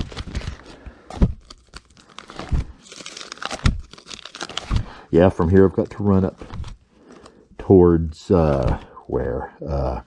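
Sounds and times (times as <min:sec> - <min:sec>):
paper sleeves rustling: 0:00.0 - 0:10.0.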